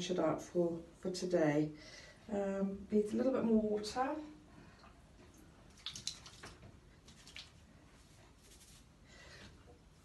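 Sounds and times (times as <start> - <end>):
hands scrunching wet hair: 5.7 - 7.6.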